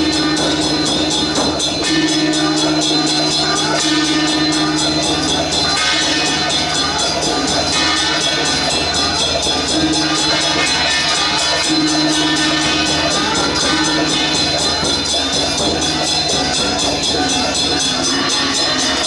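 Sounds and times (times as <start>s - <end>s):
gong and cymbals crashing: 0.0s - 19.0s
large barrel drum beating fast: 0.0s - 19.0s.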